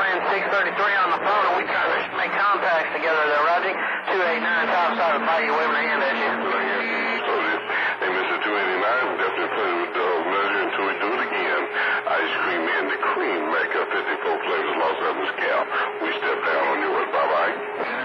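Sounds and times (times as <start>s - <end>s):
garbled voices over radio: 0.0s - 18.0s
steady low tone: 3.7s - 18.0s.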